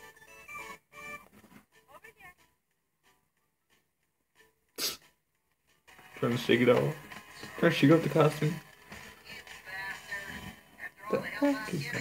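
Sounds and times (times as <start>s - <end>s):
person sneezing: 4.8s - 5.0s.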